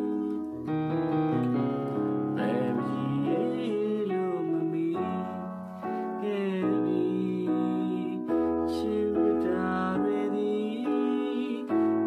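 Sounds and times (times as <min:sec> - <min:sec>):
electronic keyboard chords: 0:00.0 - 0:12.0
man singing: 0:02.1 - 0:12.0.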